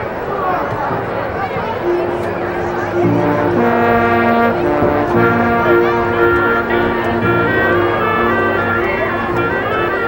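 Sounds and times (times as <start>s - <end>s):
marching band brass chords: 1.8s - 10.0s.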